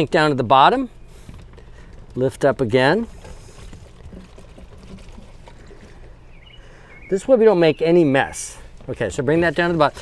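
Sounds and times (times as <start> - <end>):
water trickling down a hose: 3.0 - 6.4.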